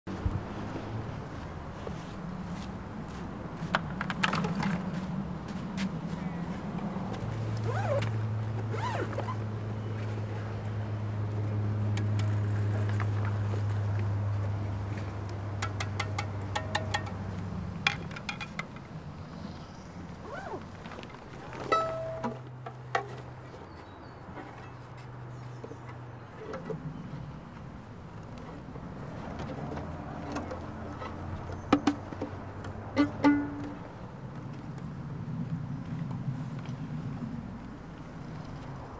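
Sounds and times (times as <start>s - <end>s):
sharp clicks and knocks: 15.6s - 18.9s
plucked string notes: 21.7s - 22.4s.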